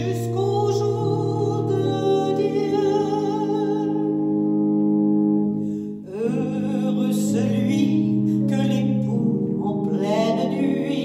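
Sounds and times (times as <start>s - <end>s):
person singing a hymn: 0.0s - 11.0s
sustained keyboard chords: 0.0s - 11.0s.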